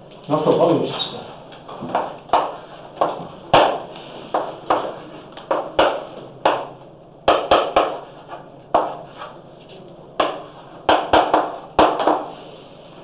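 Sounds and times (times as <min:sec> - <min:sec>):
chalk tapping on chalkboard: 0:07.3 - 0:09.3, 0:10.2 - 0:12.4.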